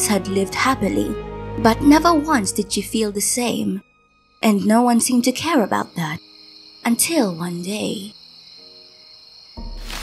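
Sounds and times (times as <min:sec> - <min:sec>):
soft sustained music notes: 0:00.0 - 0:06.2
crickets chirping: 0:03.4 - 0:10.0.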